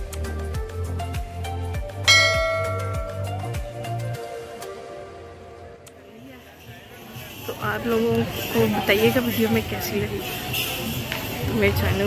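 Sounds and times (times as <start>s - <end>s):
background music with kick drum: 0.0s - 5.0s
bright bell chime: 2.1s - 3.6s.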